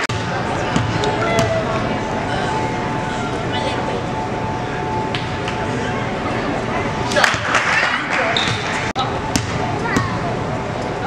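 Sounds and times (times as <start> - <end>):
crowd voices and shouts: 0.0 - 11.0
basketball bouncing on court floor: 0.1 - 1.6, 9.3 - 10.2.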